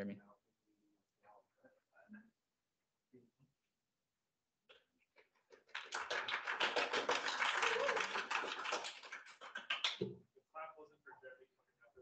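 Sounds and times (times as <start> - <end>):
audience applauding: 5.6 - 10.0.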